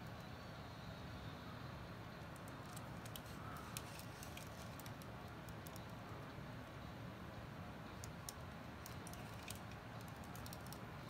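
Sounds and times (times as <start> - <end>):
plastic model parts clicking: 8.0 - 10.8.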